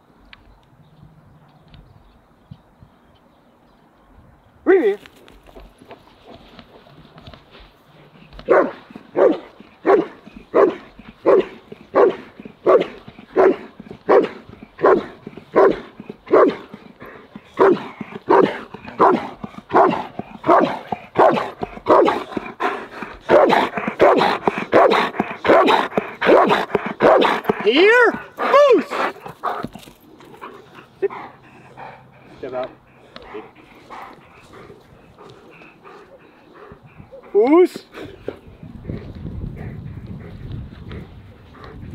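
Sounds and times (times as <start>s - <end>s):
dog barking: 8.4s - 16.6s, 17.6s - 22.3s, 23.3s - 27.5s.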